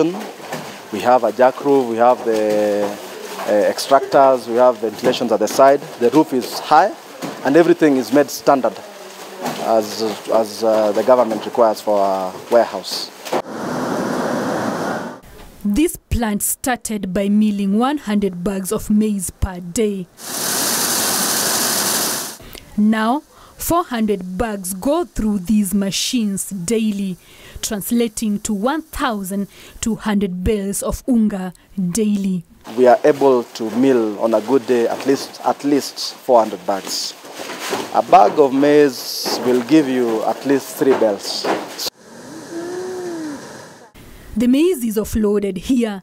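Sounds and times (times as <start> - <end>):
outdoor background noise: 0.0 - 46.0
drawn-out distant call: 41.9 - 44.0.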